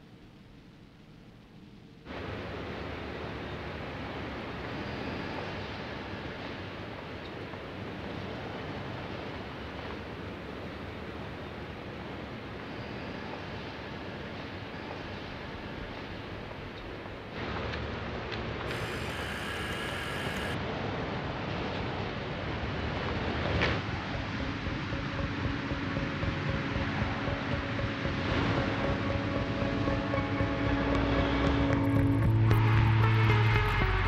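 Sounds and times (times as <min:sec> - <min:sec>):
rushing ambient noise: 0:00.0 - 0:34.0.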